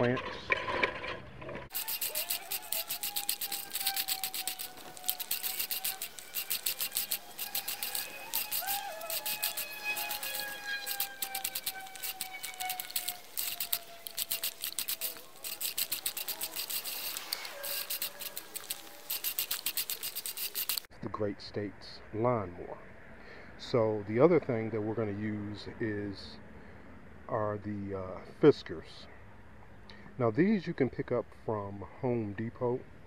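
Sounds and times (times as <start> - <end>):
faint drifting tone: 1.7 - 20.6
push reel mower clattering: 1.7 - 20.9.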